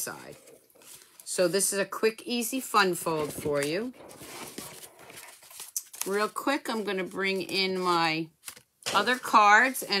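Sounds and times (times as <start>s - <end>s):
paper rustling: 0.2s - 1.3s, 3.0s - 10.0s.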